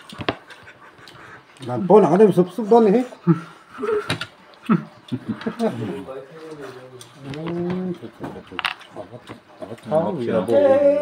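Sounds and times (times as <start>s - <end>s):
people eating at a table: 0.0s - 11.0s.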